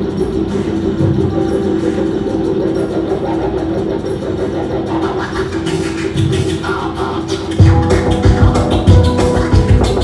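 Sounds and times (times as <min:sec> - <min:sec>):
low noisy electronic drone: 0:00.0 - 0:10.0.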